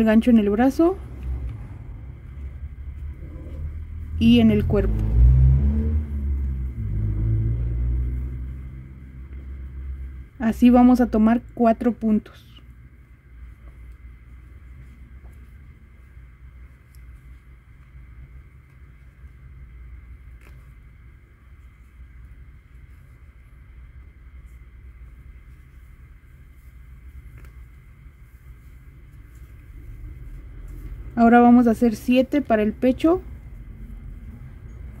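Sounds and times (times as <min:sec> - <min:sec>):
steady low rumble: 0:00.0 - 0:35.0
faint high hum: 0:06.0 - 0:35.0.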